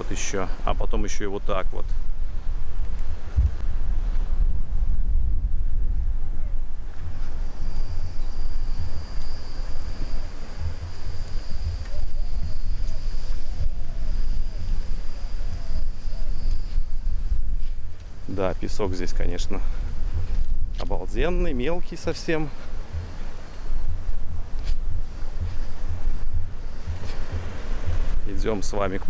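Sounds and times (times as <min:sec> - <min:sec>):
wind buffeting microphone: 0:00.0 - 0:29.0
high-pitched whine: 0:03.7 - 0:29.0.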